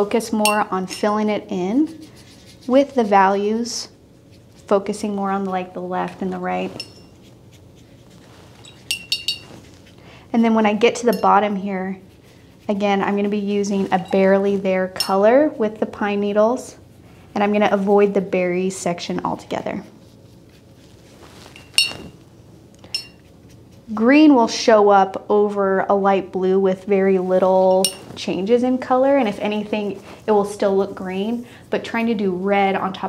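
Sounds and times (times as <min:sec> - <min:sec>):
paintbrush clinking on glass jar: 0:00.4 - 0:01.2, 0:06.7 - 0:07.2, 0:08.6 - 0:09.7, 0:11.0 - 0:11.6, 0:14.0 - 0:15.3, 0:21.5 - 0:22.2, 0:22.8 - 0:23.3, 0:27.7 - 0:28.2.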